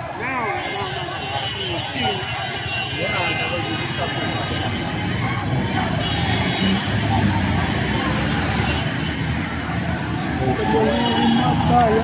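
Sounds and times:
loud steady background noise: 0:00.0 - 0:12.0
voices: 0:00.0 - 0:12.0.

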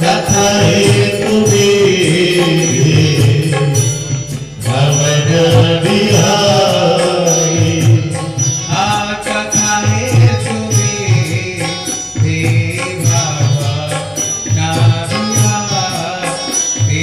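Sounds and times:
instrumental accompaniment with beat: 0:00.0 - 0:17.0
person singing a devotional chant: 0:00.0 - 0:17.0.

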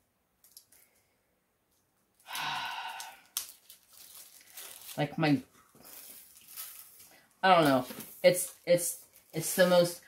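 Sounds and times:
person sighing: 0:02.2 - 0:03.4
plastic bag crinkling: 0:02.2 - 0:10.0.

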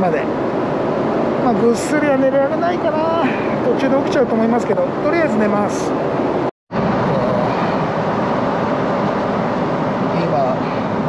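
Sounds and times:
airliner cabin engine and airflow noise: 0:00.0 - 0:11.0.

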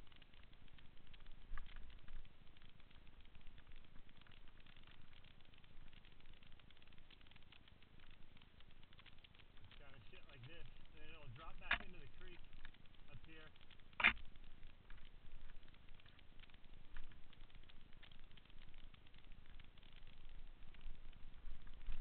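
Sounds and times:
bike tyres crackling on dirt: 0:00.0 - 0:22.0.

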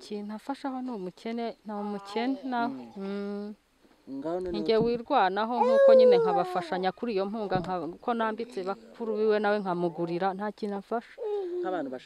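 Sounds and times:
woman speaking: 0:00.0 - 0:03.6, 0:04.4 - 0:11.3.

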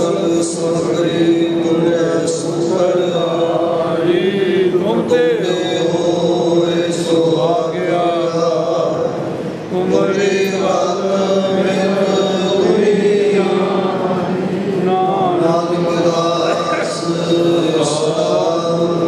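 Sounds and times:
congregation chanting: 0:00.0 - 0:19.0.

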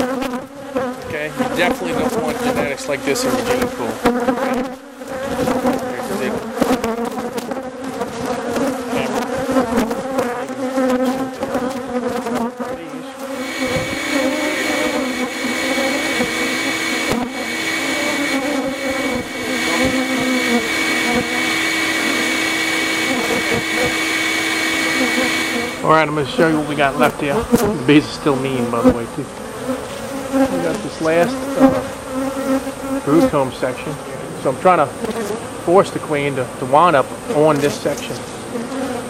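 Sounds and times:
bees buzzing: 0:00.0 - 0:39.0
vacuum motor hissing: 0:13.3 - 0:26.0.

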